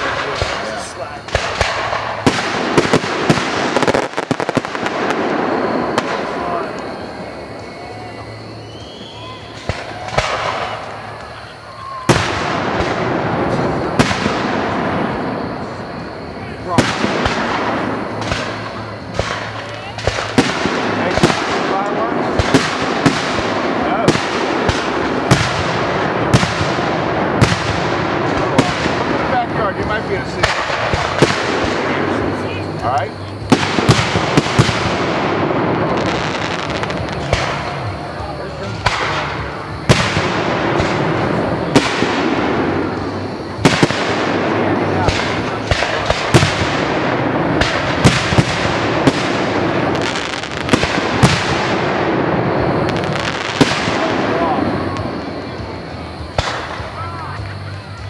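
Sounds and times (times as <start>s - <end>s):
firework shells bursting: 0.0s - 38.0s, 38.6s - 55.7s
continuous wash of noise: 0.0s - 58.0s.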